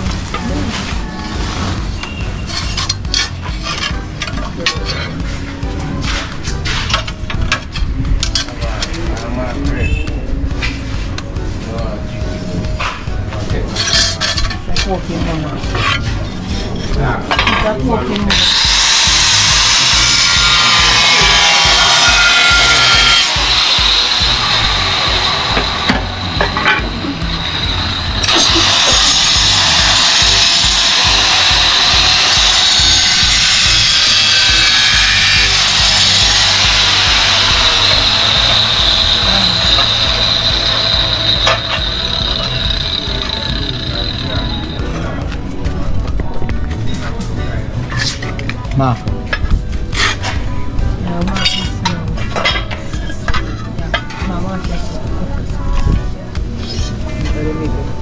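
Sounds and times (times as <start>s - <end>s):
angle grinder cutting tile: 18.2s - 45.2s.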